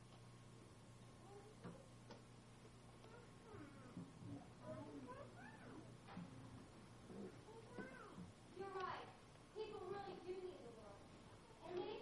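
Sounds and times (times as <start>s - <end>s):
steady low hum: 0.0s - 12.0s
faint high-pitched voices: 1.2s - 1.9s, 3.0s - 6.2s, 7.1s - 12.0s.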